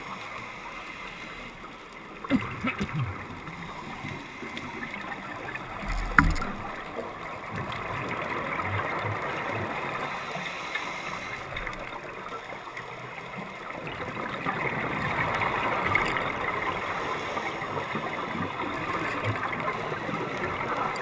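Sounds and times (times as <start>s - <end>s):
rushing gurgling water: 0.0s - 21.0s.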